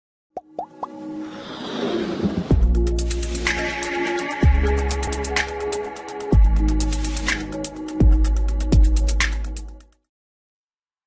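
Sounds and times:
rising blip pops: 0:00.4 - 0:01.0.

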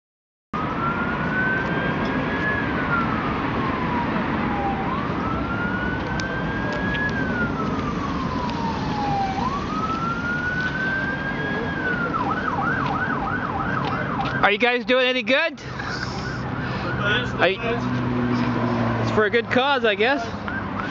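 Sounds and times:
siren wailing and yelping: 0:00.6 - 0:14.6, 0:15.8 - 0:17.5, 0:20.2 - 0:20.9.

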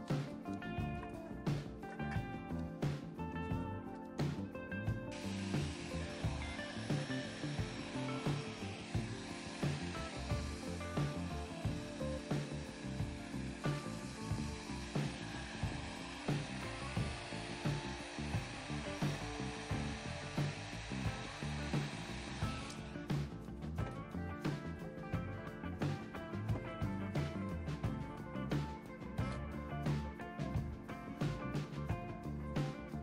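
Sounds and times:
background music with a beat: 0:00.0 - 0:33.0
heat gun blowing hot air: 0:05.1 - 0:23.4.

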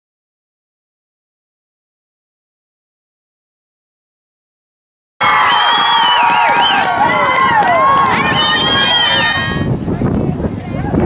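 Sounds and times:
crowd cheering and screaming: 0:05.2 - 0:09.7.

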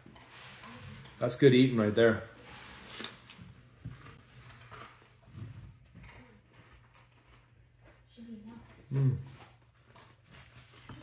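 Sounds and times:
person chewing: 0:02.7 - 0:11.0.

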